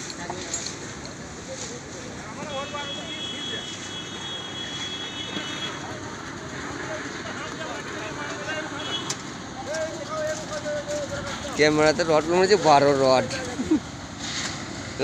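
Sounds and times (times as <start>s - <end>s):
outdoor background noise: 0.0s - 15.0s.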